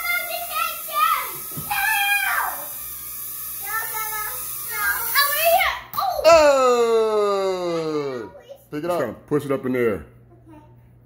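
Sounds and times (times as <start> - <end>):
child squealing: 6.0 - 8.4.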